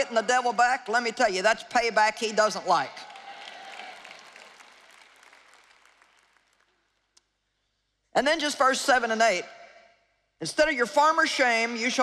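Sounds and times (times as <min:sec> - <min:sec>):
audience applause: 0:03.0 - 0:06.8.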